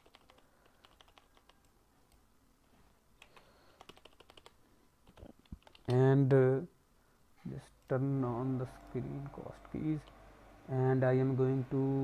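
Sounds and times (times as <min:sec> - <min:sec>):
computer keyboard clicking: 0:00.0 - 0:01.7, 0:03.2 - 0:06.0.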